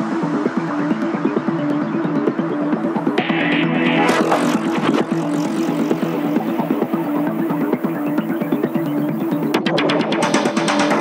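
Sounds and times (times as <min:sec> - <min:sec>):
electronic breakbeat dance music: 0:00.0 - 0:11.0
rush of noise: 0:03.1 - 0:08.7.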